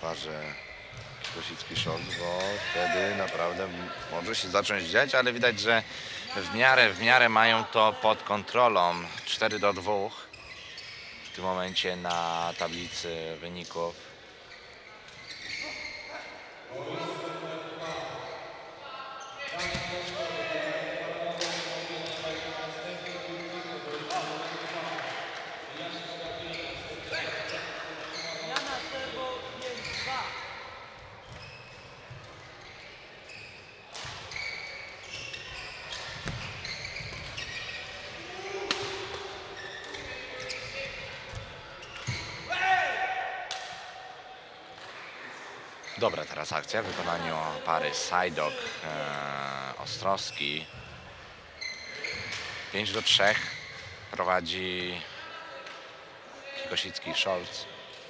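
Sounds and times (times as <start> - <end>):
voices talking: 45.8 - 50.8.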